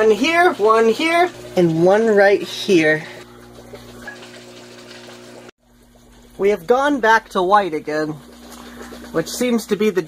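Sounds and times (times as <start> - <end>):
water bubbling and trickling: 0.0 - 10.0.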